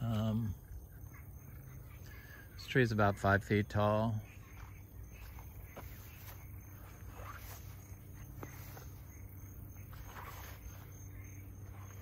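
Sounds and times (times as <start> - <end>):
footsteps rustling through grass: 4.4 - 12.0.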